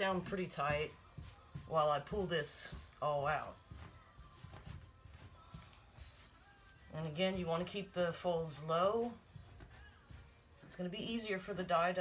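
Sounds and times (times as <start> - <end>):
cloth rustling: 0.0 - 12.0.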